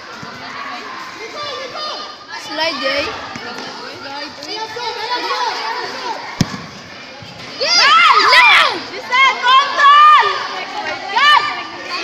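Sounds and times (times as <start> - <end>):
ball thud: 6.4 - 6.8.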